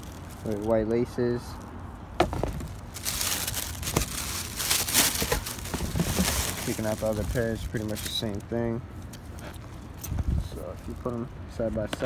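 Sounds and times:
wrapping paper crinkling: 2.6s - 8.6s.

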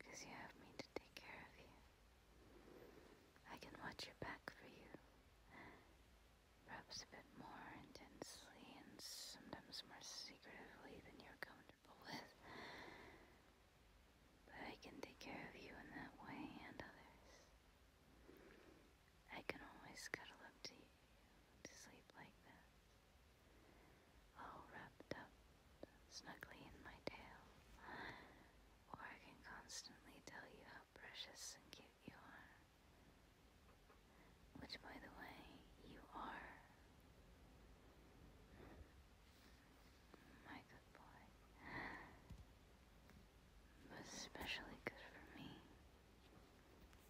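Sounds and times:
woman whispering: 0.0s - 2.0s, 3.4s - 5.8s, 6.6s - 12.7s, 14.4s - 17.6s, 19.2s - 22.7s, 24.3s - 32.7s, 34.5s - 36.9s, 39.4s - 42.3s, 43.8s - 45.9s.

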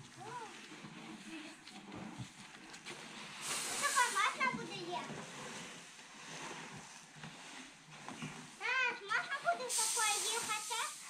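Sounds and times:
grain pouring from bucket: 0.0s - 11.0s
high voice: 3.8s - 5.1s, 8.6s - 11.0s.

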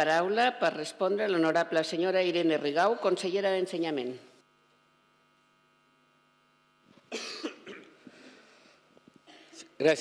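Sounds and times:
faint electrical hum: 0.0s - 10.0s
person coughing: 7.1s - 8.0s.

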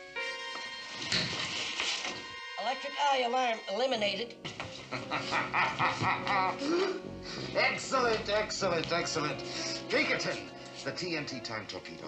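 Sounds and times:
music: 0.0s - 12.0s
man speaking: 7.5s - 12.0s.

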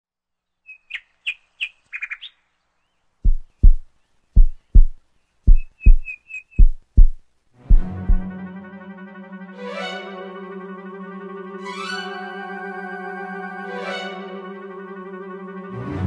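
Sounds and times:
bird chirps: 0.4s - 7.2s
heartbeat-like double thump: 3.2s - 8.3s
brass music: 7.6s - 16.0s.

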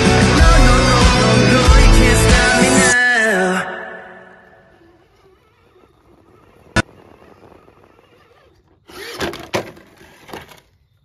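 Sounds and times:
electric motor and gears whining: 4.4s - 10.7s.

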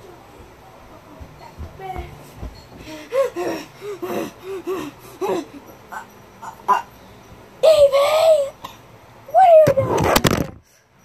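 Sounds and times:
stifled giggling: 3.0s - 6.9s.

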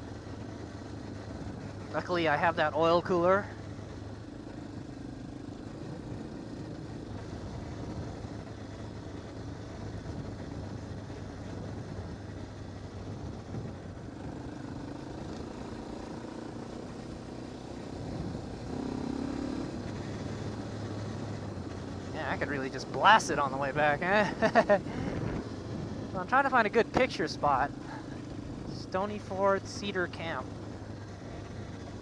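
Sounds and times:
quad engine running: 0.0s - 32.0s
tyres on dirt road: 0.0s - 32.0s
wind noise: 13.0s - 14.4s, 18.0s - 18.6s, 24.3s - 26.2s.

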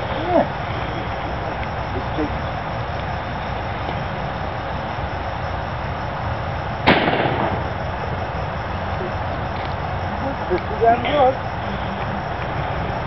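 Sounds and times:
steady background noise: 0.0s - 13.0s
small cannon bang: 6.9s - 7.7s.

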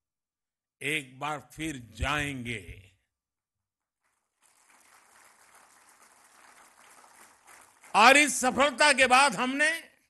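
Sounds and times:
audience applause: 4.1s - 9.0s.

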